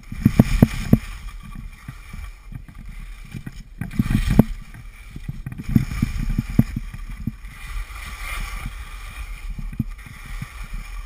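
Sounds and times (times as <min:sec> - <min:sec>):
skis scraping over snow: 0:00.0 - 0:11.0
wind buffeting microphone: 0:00.0 - 0:11.0.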